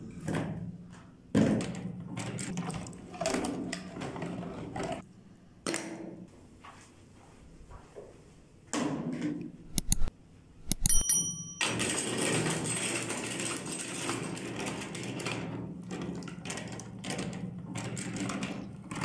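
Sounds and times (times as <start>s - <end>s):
sharp clicks: 9.7s - 11.0s.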